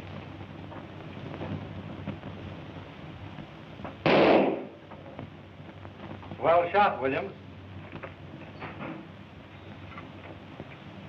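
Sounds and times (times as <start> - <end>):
old film soundtrack hum and hiss: 0.0 - 11.0
gunshot: 4.0 - 4.8.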